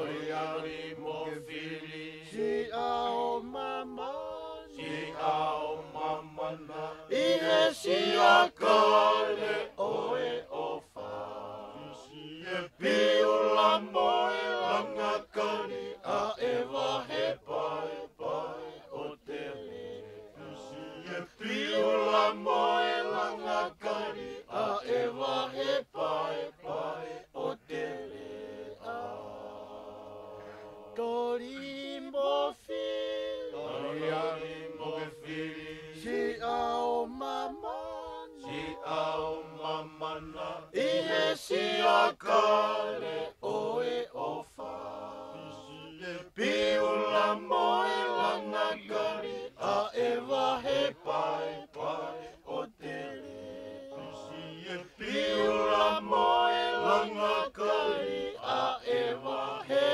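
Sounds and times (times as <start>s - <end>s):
group vocal chant: 0.0s - 59.9s.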